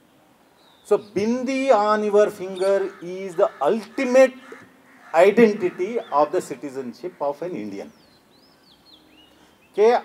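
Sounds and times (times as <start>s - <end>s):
man's amplified voice: 0.9s - 4.6s, 5.2s - 8.0s, 9.8s - 10.0s.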